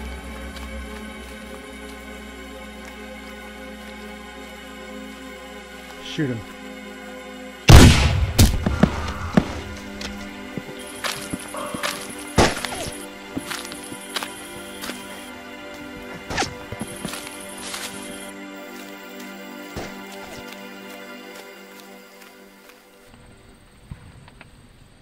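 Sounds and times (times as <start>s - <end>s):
background music: 0.0s - 24.1s
rifle shot: 7.7s - 9.1s.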